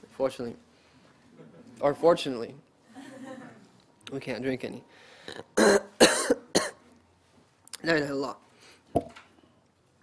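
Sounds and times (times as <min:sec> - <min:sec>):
man coughing: 0:05.6 - 0:06.8.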